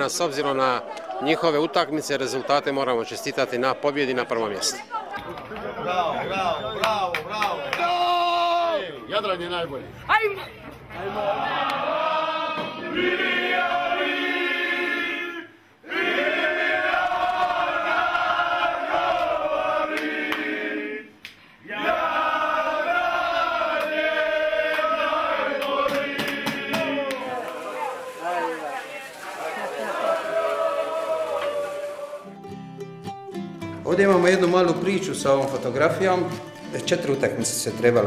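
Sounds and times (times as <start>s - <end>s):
men singing a chant: 21.7s - 28.1s.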